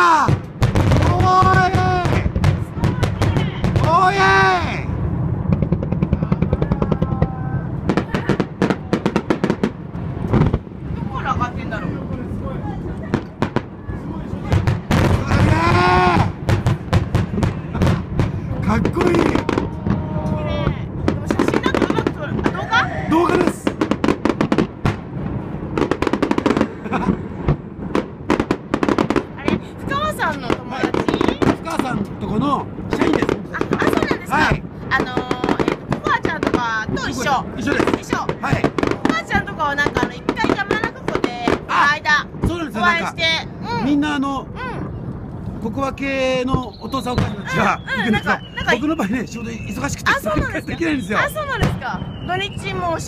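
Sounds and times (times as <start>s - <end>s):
fireworks bangs: 0.0s - 53.0s.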